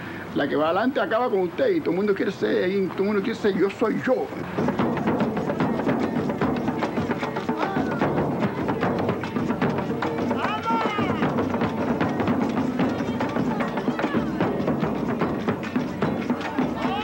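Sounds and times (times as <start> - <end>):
voices: 0.0 - 17.0
drum ensemble fast rhythm: 3.1 - 17.0.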